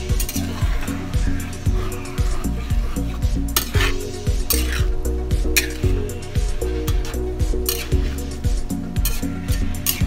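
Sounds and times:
metal spatula scraping a wok: 0:00.0 - 0:08.4, 0:09.0 - 0:10.0
background music with steady beat: 0:00.0 - 0:10.0.

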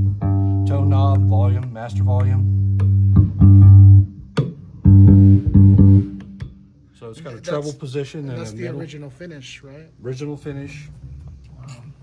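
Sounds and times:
electric bass note plucked: 0:00.0 - 0:06.7.

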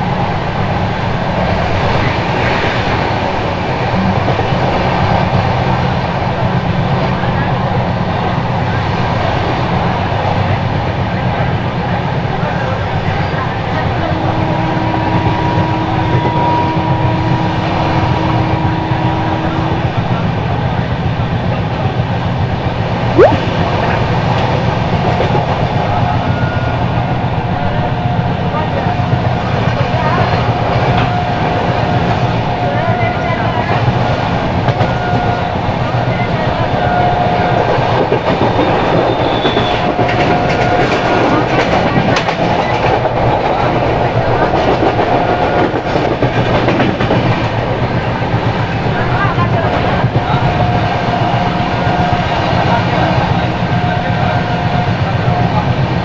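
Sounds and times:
train wheels rumbling on rail: 0:00.0 - 0:23.1, 0:23.7 - 0:56.0.

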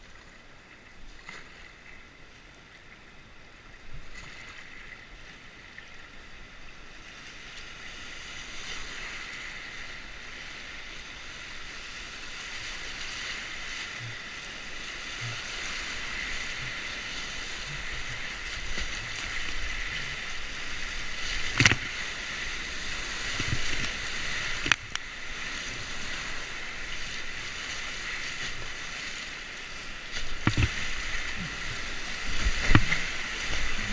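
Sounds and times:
whitewater rapids rushing: 0:09.1 - 0:33.9.

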